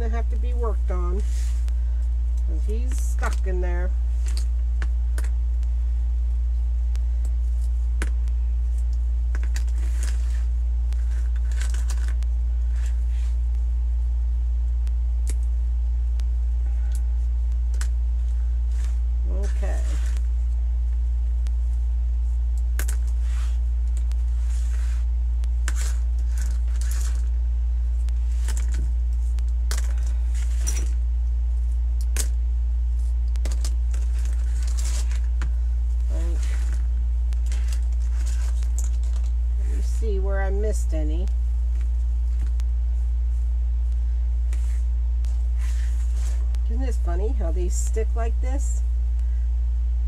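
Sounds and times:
steady low hum: 0.0s - 50.0s
mesh rustling: 18.1s - 32.1s, 32.8s - 40.1s, 41.4s - 46.7s.

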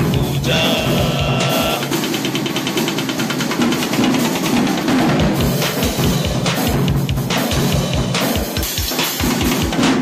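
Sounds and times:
fast drum roll: 0.0s - 10.0s.

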